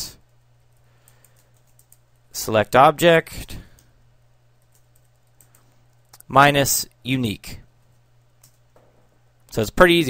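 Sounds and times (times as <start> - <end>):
low steady hum: 0.0 - 10.0
typing on a computer keyboard: 1.0 - 2.2, 4.6 - 6.0, 8.4 - 8.6.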